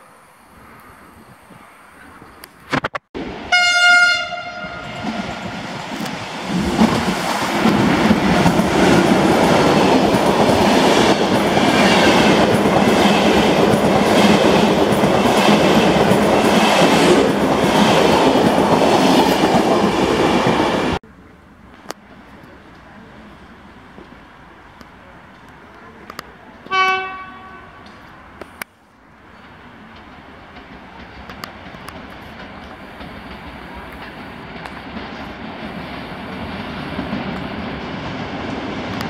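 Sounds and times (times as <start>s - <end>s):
locomotive horn blast: 3.4s - 5.2s, 26.6s - 28.3s
train wheels rumbling on rails: 4.3s - 21.0s, 21.7s - 39.0s.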